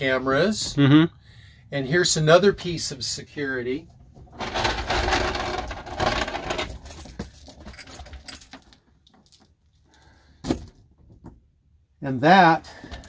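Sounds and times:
metal chain rattling and clinking: 4.3s - 9.5s, 10.4s - 10.8s.

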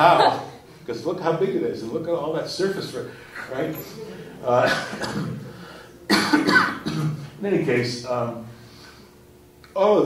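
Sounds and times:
man coughing: 4.6s - 7.3s.

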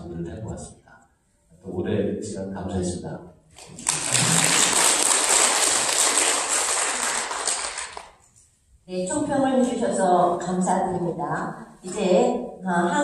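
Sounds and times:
audience applauding: 3.6s - 8.2s.

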